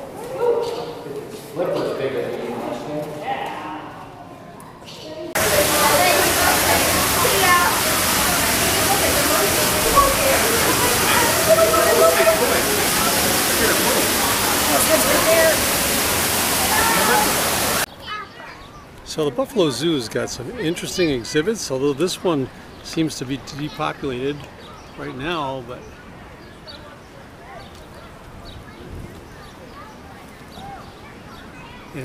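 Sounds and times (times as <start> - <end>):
faint voices: 0.0 - 32.0
background voices: 5.4 - 17.9
loud rushing water noise: 5.4 - 17.9.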